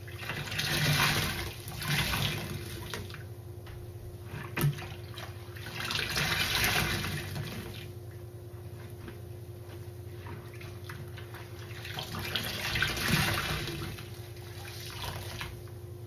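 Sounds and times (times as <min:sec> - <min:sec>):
water gushing: 0:00.0 - 0:03.1, 0:05.0 - 0:07.9, 0:11.6 - 0:15.6.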